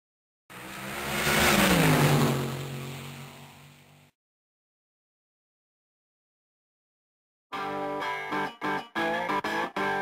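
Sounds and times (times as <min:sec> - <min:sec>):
car speeding past: 0:00.5 - 0:04.1.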